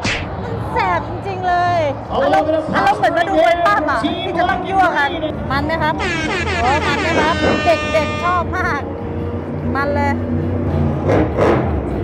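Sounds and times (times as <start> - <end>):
monster truck engine drone: 5.1 - 12.0.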